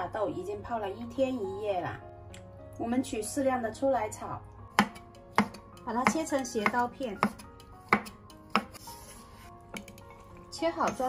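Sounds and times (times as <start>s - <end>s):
cleaver striking wooden board: 4.8s - 8.8s.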